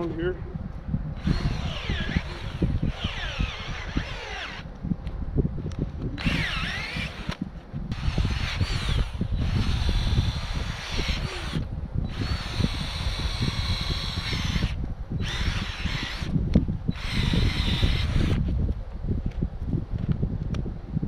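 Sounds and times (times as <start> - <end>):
cordless drill motor whine: 1.2 - 4.7, 6.2 - 18.6.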